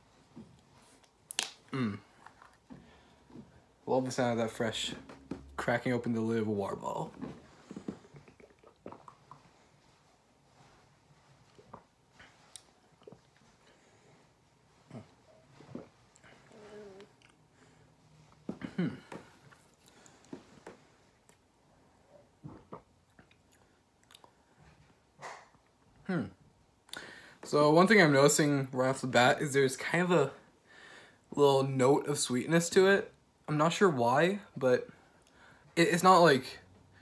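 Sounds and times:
person gulping water: 0:01.4 - 0:02.8, 0:07.1 - 0:09.8, 0:11.5 - 0:13.7, 0:22.4 - 0:24.4
lip smacks and tongue clicks: 0:22.6 - 0:24.4.

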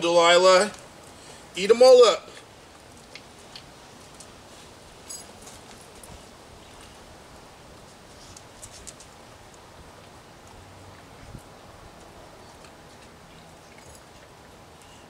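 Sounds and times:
steady outdoor hiss: 0:00.0 - 0:15.0.

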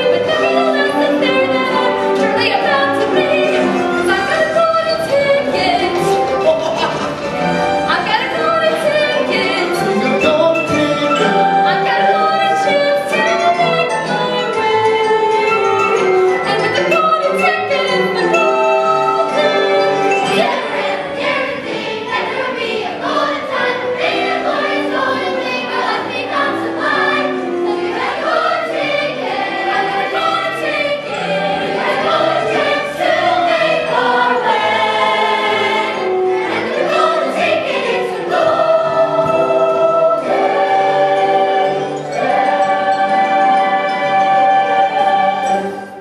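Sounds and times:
choir of young voices singing: 0:00.0 - 0:46.0.

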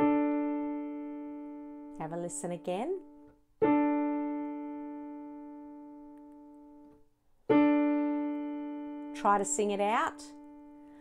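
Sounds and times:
piano interval ringing: 0:00.0 - 0:11.0.

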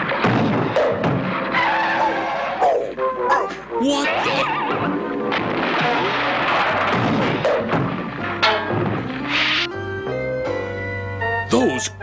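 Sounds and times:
cartoon background music: 0:00.2 - 0:12.0.

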